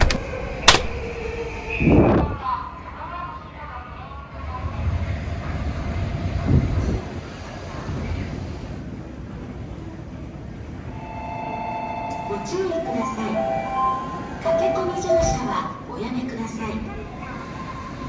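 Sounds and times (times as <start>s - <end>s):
train rumbling: 0.0s - 18.0s
station chime: 10.9s - 15.6s.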